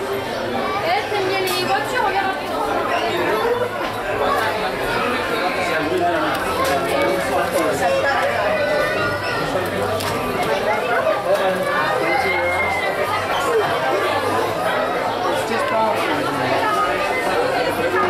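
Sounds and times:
shoppers chattering: 0.0s - 18.0s.

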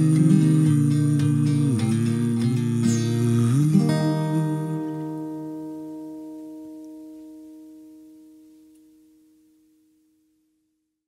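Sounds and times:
acoustic guitar chord ringing: 0.0s - 10.2s.

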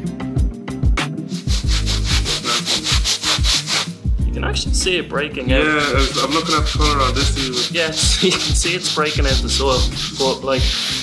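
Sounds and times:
scrub brush scrubbing rug: 1.4s - 3.9s, 5.6s - 11.0s.

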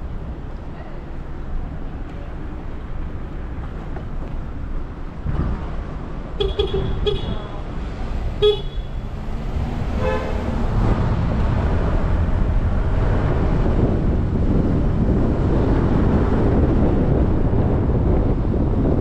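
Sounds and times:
traffic and road noise: 0.0s - 19.0s
car horn toots: 6.4s - 7.6s, 8.4s - 9.0s, 10.0s - 10.5s.

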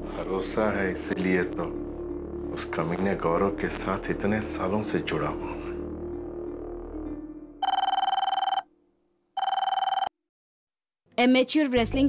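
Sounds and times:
desk telephone ringing: 7.6s - 8.7s, 9.4s - 10.1s.

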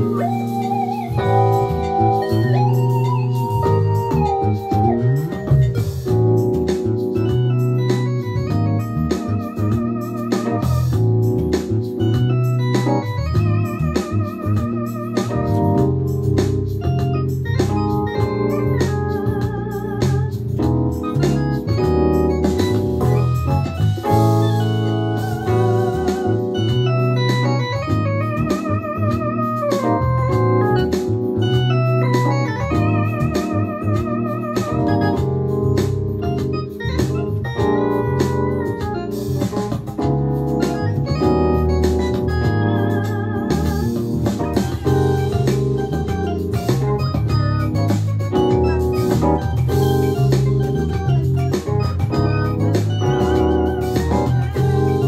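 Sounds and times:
bass guitar line: 0.0s - 55.0s
electric keyboard chords: 0.0s - 55.0s
steady drum beat: 0.0s - 55.0s
wavering lead line: 0.0s - 55.0s.

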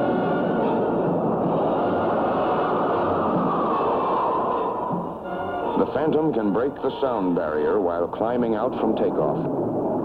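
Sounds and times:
jet engine roaring: 0.0s - 10.0s.

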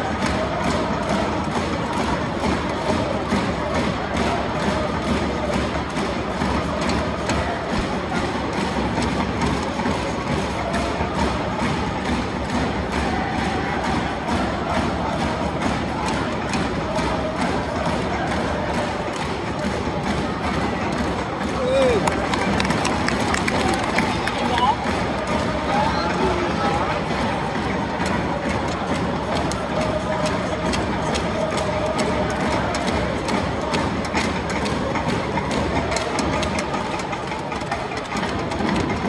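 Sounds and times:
supporters chanting in unison: 0.0s - 39.0s.

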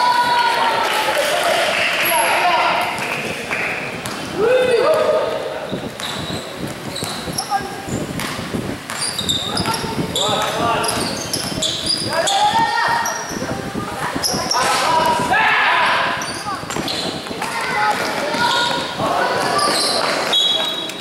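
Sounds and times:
sneaker squeaks: 4.0s - 15.3s, 16.0s - 21.0s
basketball dribbling: 5.9s - 13.4s.

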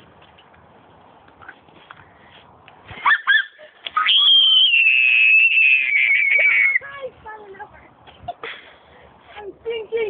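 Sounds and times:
girl shrieking: 3.0s - 6.8s.

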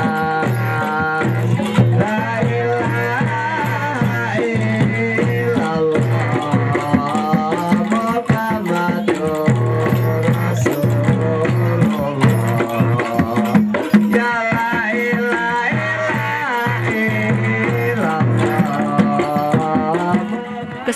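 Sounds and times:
drums beating: 0.0s - 20.9s
person singing wavering melody: 0.0s - 20.9s.

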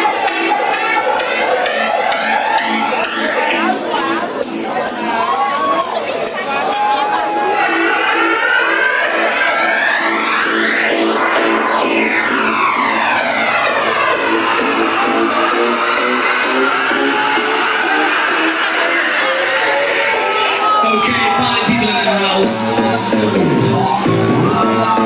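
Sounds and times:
crowd shouting and cheering: 0.0s - 25.0s
electronic dance music: 0.0s - 25.0s
sweeping effect: 9.9s - 20.5s.

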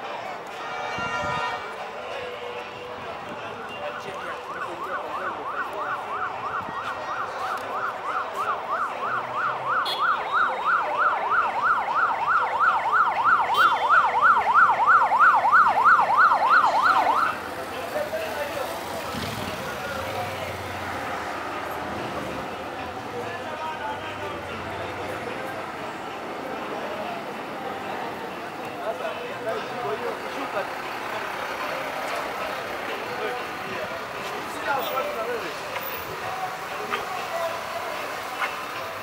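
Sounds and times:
police siren yelp: 3.8s - 17.5s.

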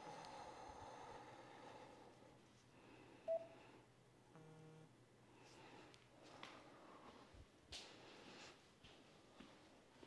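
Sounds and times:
electronic beep: 3.3s - 3.5s
low buzzy tone: 4.3s - 5.0s.

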